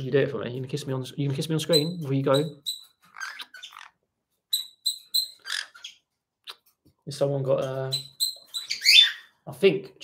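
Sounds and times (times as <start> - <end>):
parrot chirping: 1.6 - 6.8, 7.6 - 9.4.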